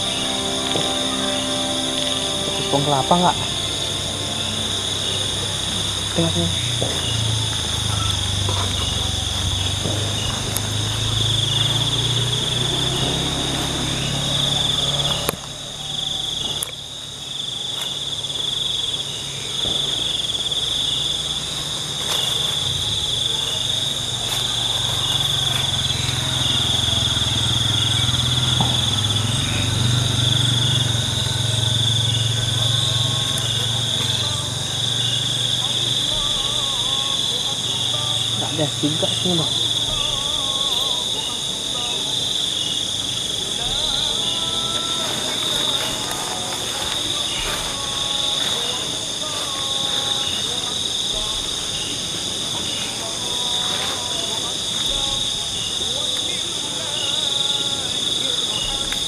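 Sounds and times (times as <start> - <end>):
low steady hum: 0.0 - 18.5
crickets and insects trilling: 0.0 - 59.0.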